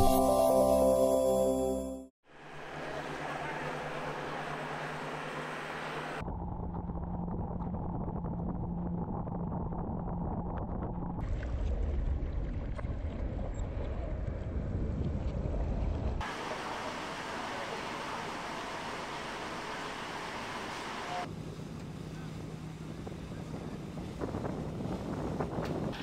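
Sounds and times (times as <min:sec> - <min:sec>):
boat engine running: 0:02.3 - 0:26.0
wind rumble on microphone: 0:06.2 - 0:16.2, 0:22.8 - 0:26.0.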